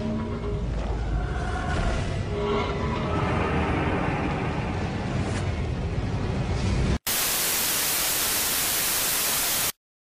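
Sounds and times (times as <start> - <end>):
white noise static hiss: 7.1 - 9.8.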